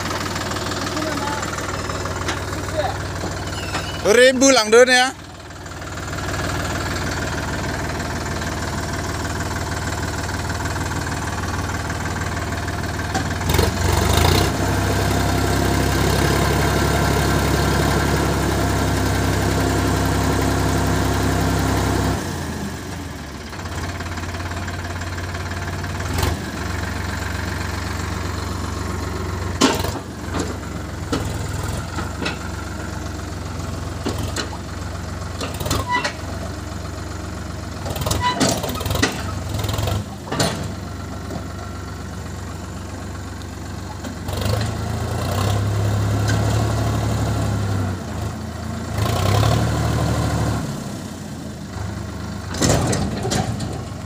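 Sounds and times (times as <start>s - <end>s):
rocks knocking as load shifts: 0.0s - 4.0s, 29.4s - 33.0s
tractor diesel engine running: 0.0s - 54.0s.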